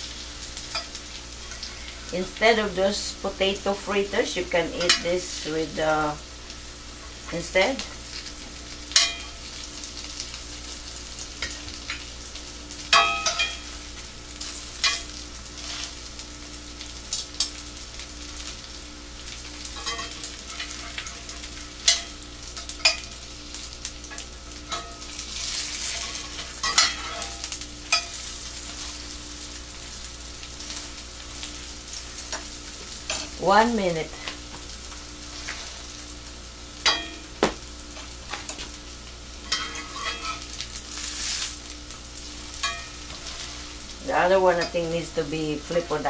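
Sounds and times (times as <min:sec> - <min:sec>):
fritters sizzling in oil: 0:00.0 - 0:46.0
metal utensil scraping pan: 0:24.7 - 0:28.2, 0:39.4 - 0:41.5, 0:42.6 - 0:43.8.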